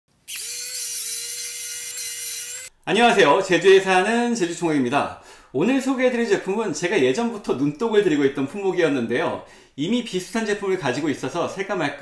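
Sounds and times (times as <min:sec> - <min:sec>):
electric screwdriver motor whine: 0:00.2 - 0:02.7.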